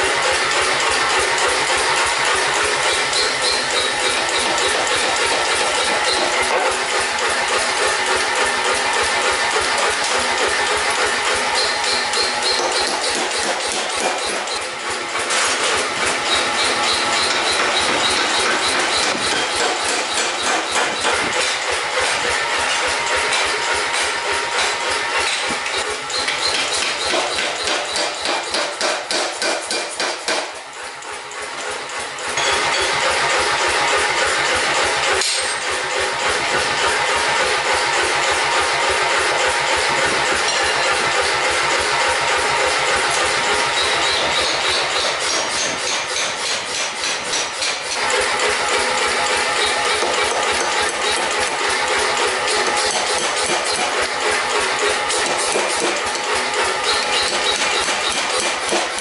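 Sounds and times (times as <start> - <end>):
power hammer striking hot steel: 0.0 - 59.0.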